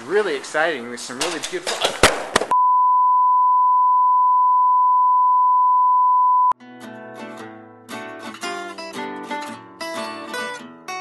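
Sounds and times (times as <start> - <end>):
steady test tone beep: 2.6 - 6.6.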